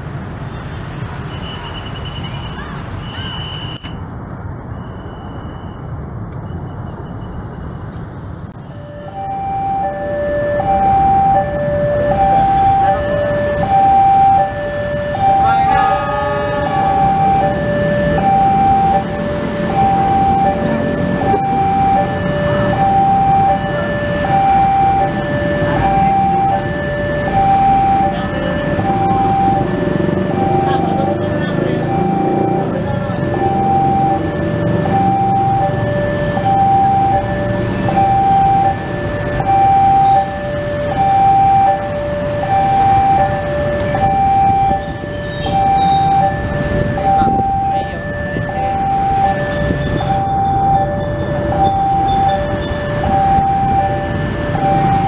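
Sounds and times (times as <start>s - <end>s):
two-tone warning alarm: 0.5s - 7.9s, 8.6s - 55.0s.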